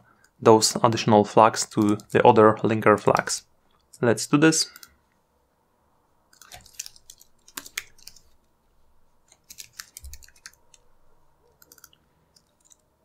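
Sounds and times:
keyboard keys clicking: 6.4 - 8.3, 9.3 - 10.9, 11.5 - 12.8.

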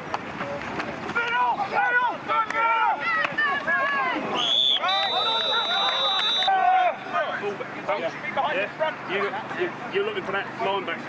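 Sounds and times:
referee's whistle blowing: 4.3 - 7.4.

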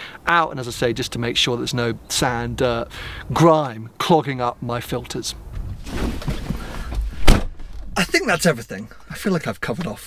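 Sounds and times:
rumbling and rustling in car: 5.4 - 8.6
thump in car cabin: 6.1 - 7.6.

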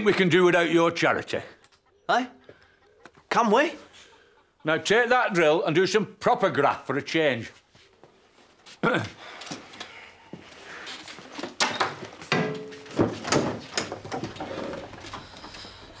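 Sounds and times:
shuffling: 7.3 - 13.2
man clearing throat: 8.8 - 9.2.

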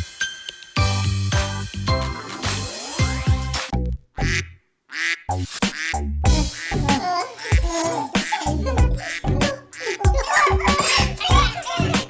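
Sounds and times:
children's music: 0.0 - 3.7, 5.7 - 12.0
cartoon duck quacks: 4.2 - 7.1.

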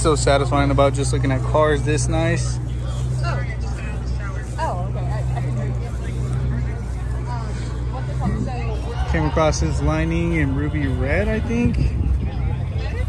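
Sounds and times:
crowd chatter: 0.0 - 13.0
steady low rumble: 0.0 - 13.0.

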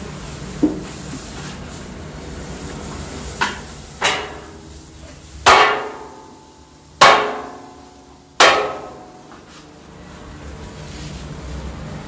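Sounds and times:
metal spatula clanging on griddle: 3.5 - 4.6, 5.4 - 6.2, 7.0 - 9.2.

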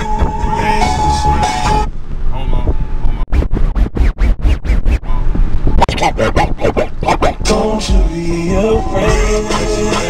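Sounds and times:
turntable scratches: 3.3 - 8.1
hip-hop music with synth tone: 5.8 - 10.0.

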